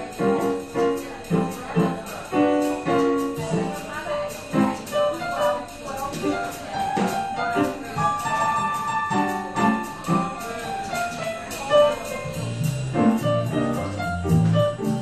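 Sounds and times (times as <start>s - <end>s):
jazz keyboard playing: 0.0s - 15.0s.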